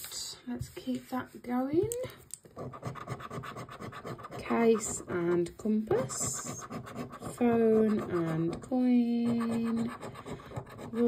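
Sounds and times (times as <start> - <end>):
coin scratching a scratch card: 2.6 - 5.4, 6.0 - 11.0.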